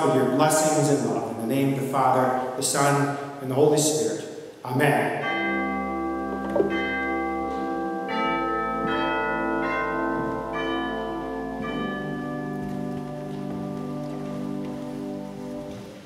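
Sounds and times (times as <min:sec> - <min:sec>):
organ playing sustained chords: 0:00.0 - 0:04.0, 0:05.0 - 0:16.0.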